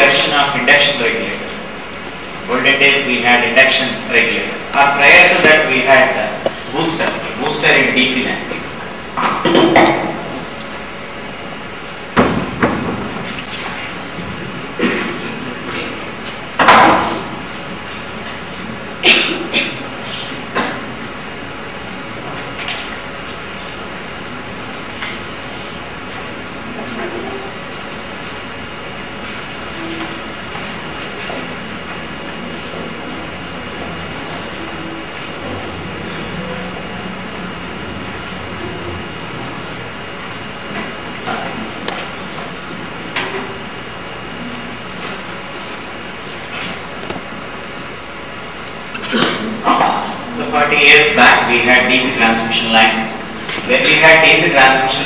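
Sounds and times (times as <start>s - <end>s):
rushing room noise: 0.0s - 55.0s.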